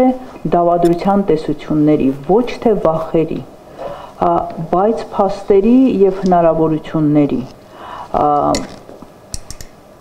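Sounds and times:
woman speaking: 0:00.0 - 0:03.6, 0:04.2 - 0:08.8.

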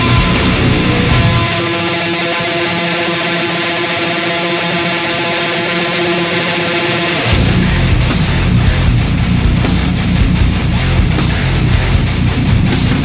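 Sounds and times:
drums and bass: 0:00.0 - 0:01.7, 0:07.2 - 0:13.0
distorted electric guitar: 0:00.0 - 0:13.0.

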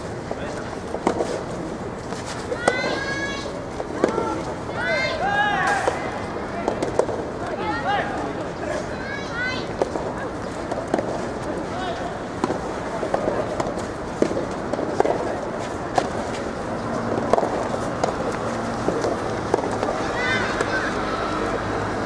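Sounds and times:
tennis ball struck by rackets: 0:17.2 - 0:20.0.

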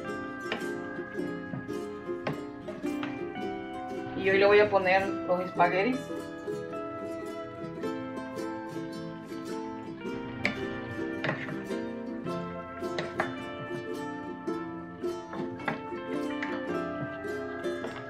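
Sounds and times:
plucked string instrumental music: 0:00.0 - 0:18.0.

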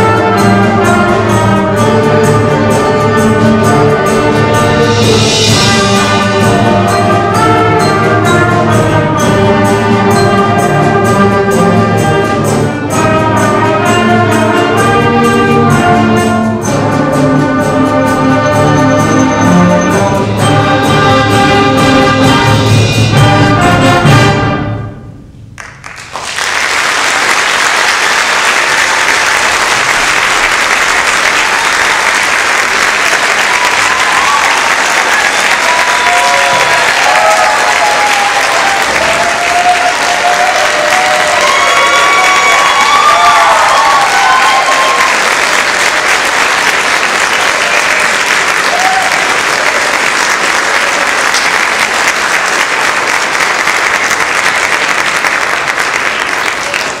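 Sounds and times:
audience applauding: 0:25.6 - 0:57.0
voices cheering: 0:31.0 - 0:51.4.

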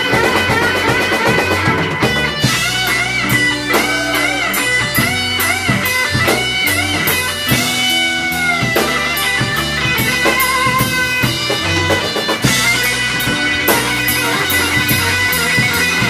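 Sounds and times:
bass guitar: 0:00.0 - 0:16.0
drums: 0:00.0 - 0:16.0
electric guitar bending notes: 0:00.0 - 0:16.0.

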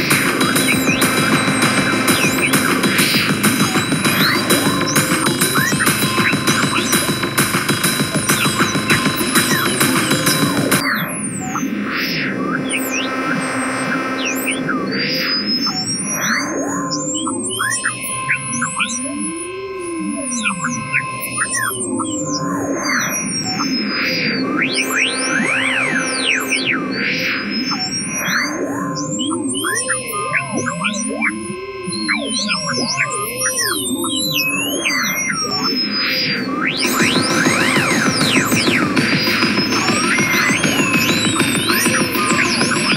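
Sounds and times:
low hum: 0:00.0 - 0:16.1, 0:23.7 - 0:29.0
high whistling glides: 0:00.0 - 0:16.7, 0:22.1 - 0:29.8, 0:33.6 - 0:42.9
synthesizer tones swooping: 0:00.0 - 0:42.9.

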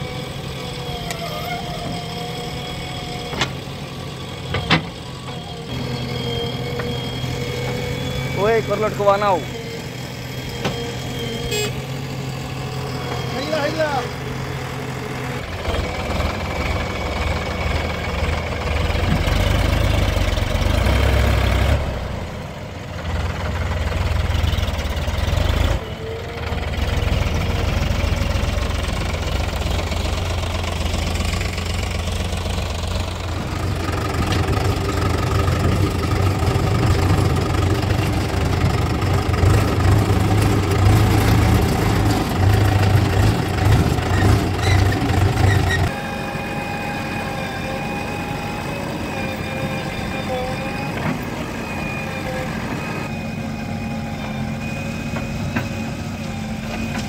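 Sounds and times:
steady high tone: 0:00.0 - 0:14.2
tractor and backhoe engines droning: 0:00.0 - 0:57.0.

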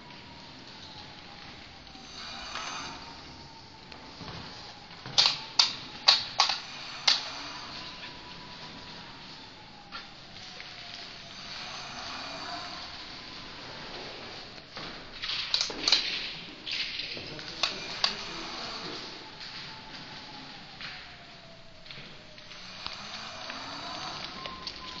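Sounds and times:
electric scooter motor whining: 0:00.0 - 0:25.0
sharp squeaks and clicks: 0:15.2 - 0:21.2, 0:21.8 - 0:25.0.

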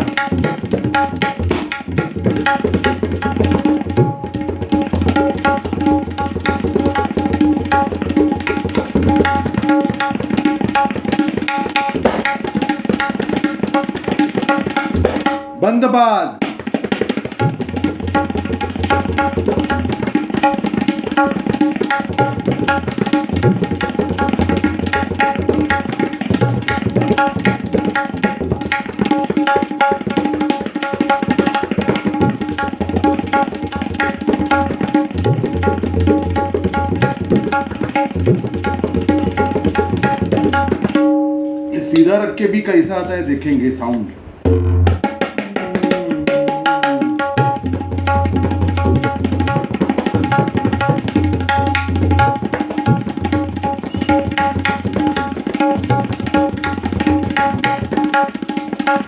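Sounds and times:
fast tabla drumming: 0:00.0 - 0:59.0
person's voiced call: 0:15.6 - 0:16.4, 0:41.7 - 0:44.3
ringing bass drum tone: 0:44.4 - 0:45.1.

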